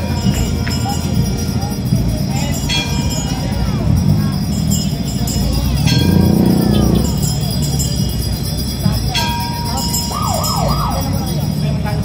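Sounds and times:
crowd noise: 0.0s - 12.0s
street traffic: 0.0s - 12.0s.

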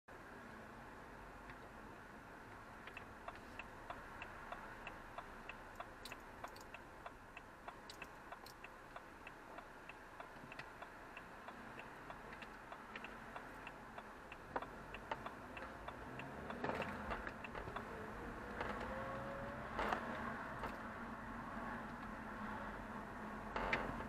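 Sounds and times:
engine and road hum: 0.1s - 24.0s
car turn indicator ticking: 2.6s - 20.8s.

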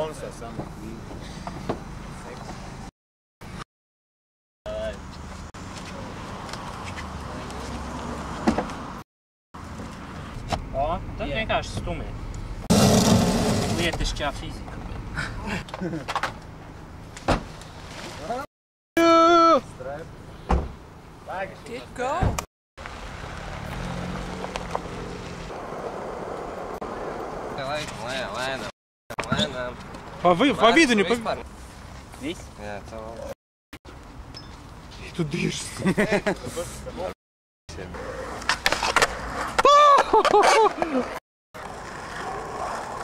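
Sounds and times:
distant road traffic hum: 0.0s - 3.6s, 4.7s - 9.0s, 9.6s - 18.4s, 19.6s - 33.3s, 33.9s - 43.0s.

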